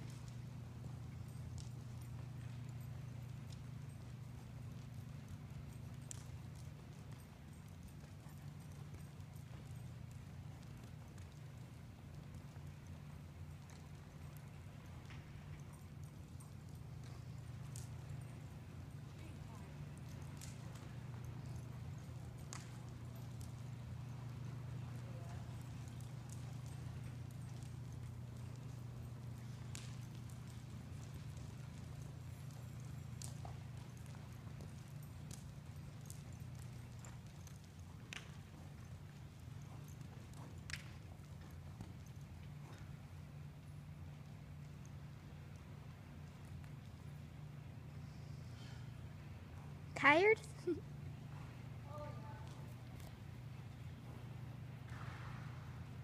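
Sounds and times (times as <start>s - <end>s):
horse hoofbeats on dirt: 0.0s - 56.0s.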